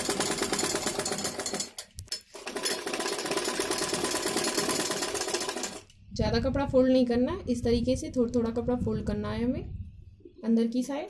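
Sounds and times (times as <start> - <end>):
sewing machine stitching: 0.0 - 5.9.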